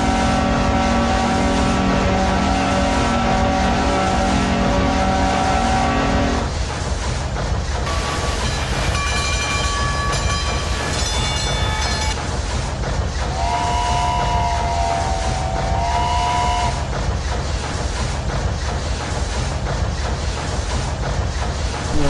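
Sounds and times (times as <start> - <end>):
train whistle: 0.0 - 6.4, 13.3 - 16.9
train chugging: 0.0 - 22.0.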